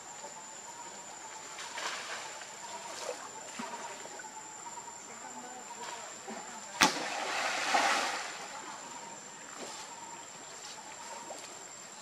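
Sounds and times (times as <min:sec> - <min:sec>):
sharp crack: 0:06.8 - 0:07.2.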